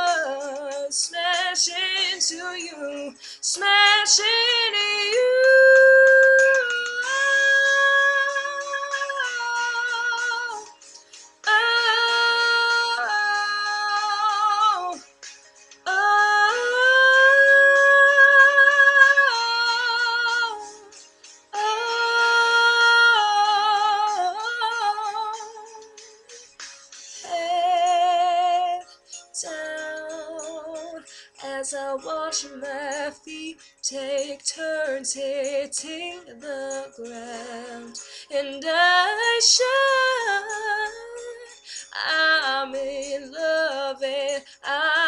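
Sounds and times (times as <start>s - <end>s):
woman singing unaccompanied: 0.0s - 10.7s, 27.2s - 45.0s.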